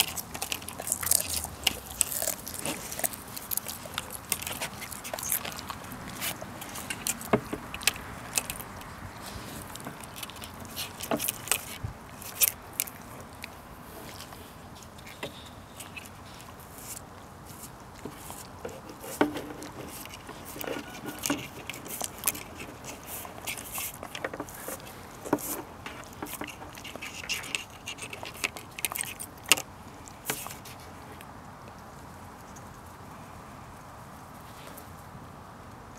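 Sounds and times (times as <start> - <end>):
dog licking egg: 0.0 - 8.6
dogs crunching eggshell: 0.0 - 31.1.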